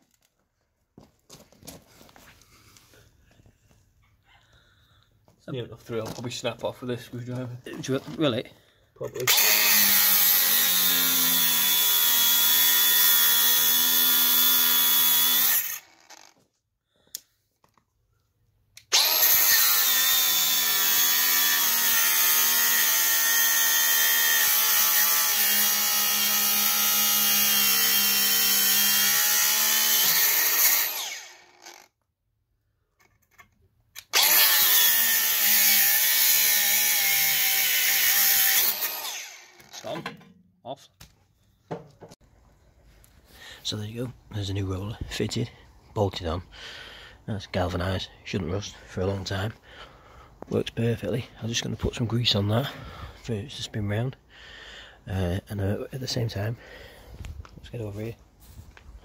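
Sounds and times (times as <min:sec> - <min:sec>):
angle grinder cutting steel: 0:09.2 - 0:16.4, 0:18.9 - 0:31.9, 0:34.0 - 0:40.0.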